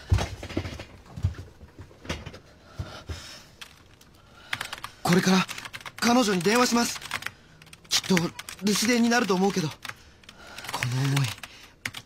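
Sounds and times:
person speaking: 4.6 - 12.0.

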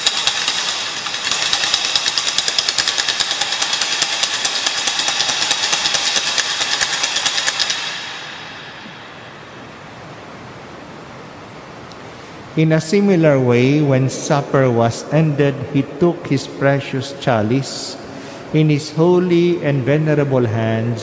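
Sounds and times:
wooden clapper rattling: 0.0 - 8.4.

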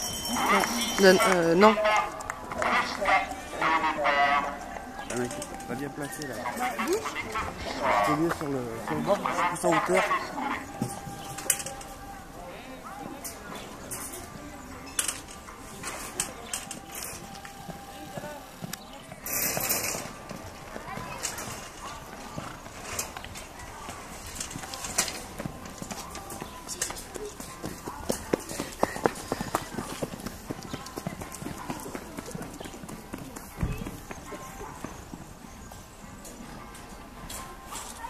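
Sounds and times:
horse hoofbeats on sand: 23.8 - 35.9.

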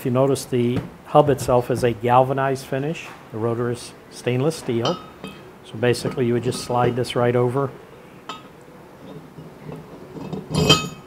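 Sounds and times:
metal handling scrapes: 4.5 - 7.2, 8.2 - 11.0.

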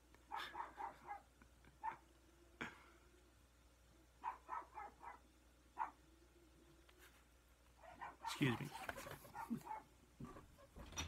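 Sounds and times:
dog barking: 0.3 - 2.0, 4.2 - 6.0, 7.8 - 8.6, 9.2 - 9.9.

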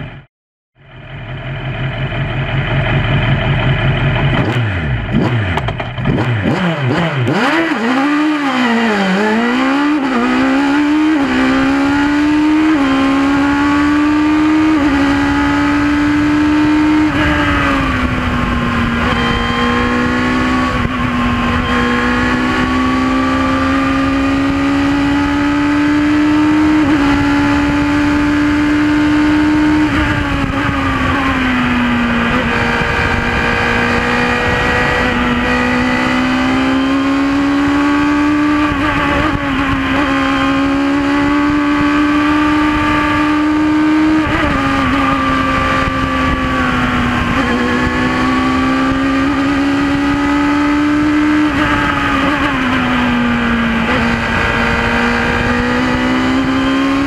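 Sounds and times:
wind and road noise: 0.0 - 57.0
race car engine at high revs: 1.0 - 57.0.

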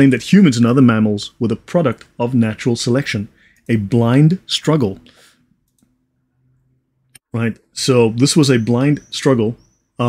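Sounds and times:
faint breath: 3.3 - 3.7, 5.0 - 5.6
faint click: 5.7 - 6.0.

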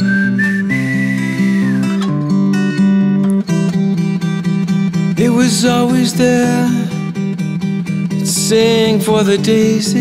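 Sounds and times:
whistled melody: 0.0 - 2.3.

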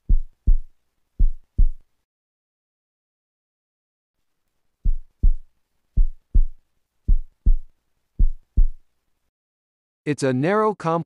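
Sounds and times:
heartbeat thumps: 0.0 - 1.8, 4.8 - 8.8.

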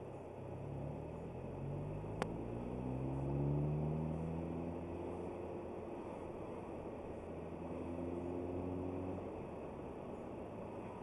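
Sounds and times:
car engine accelerating: 0.0 - 10.8.

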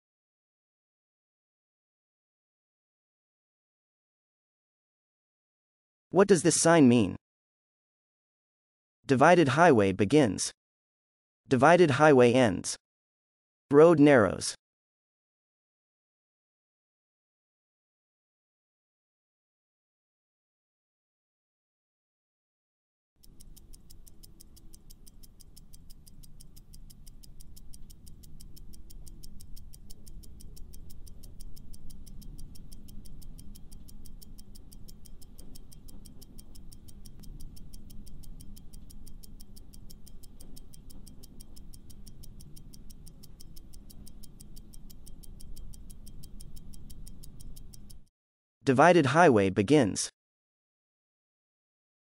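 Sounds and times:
fast clock ticking: 23.2 - 48.1.

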